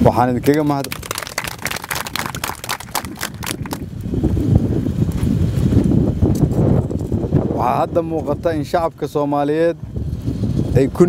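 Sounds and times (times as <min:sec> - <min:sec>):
man talking: 0:00.0 - 0:01.1.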